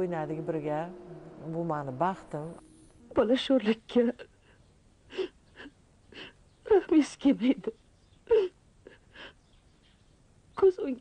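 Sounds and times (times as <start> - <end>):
woman sobbing: 5.1 - 9.4
woman breathing softly: 8.9 - 9.4.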